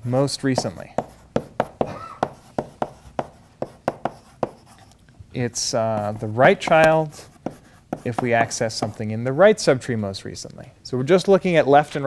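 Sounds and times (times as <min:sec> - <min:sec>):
chalk tapping and scraping on blackboard: 0:00.4 - 0:09.2.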